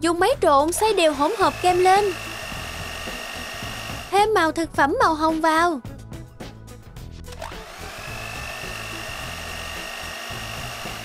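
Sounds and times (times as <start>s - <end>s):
electric hand mixer whining: 0.6s - 4.4s, 7.3s - 11.0s.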